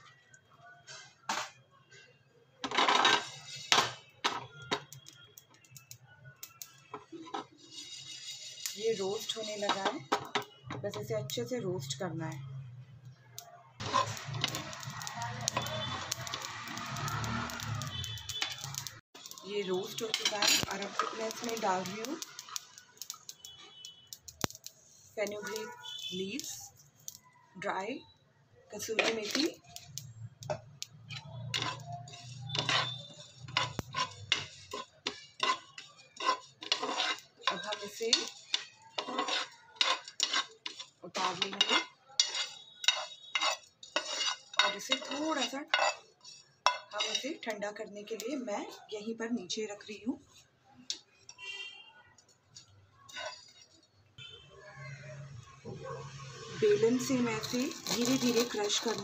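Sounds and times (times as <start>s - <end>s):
spatula scraping roasting seeds: 2.7s - 12.0s, 13.8s - 27.2s, 28.8s - 48.9s, 52.5s - 53.9s, 56.5s - 59.0s.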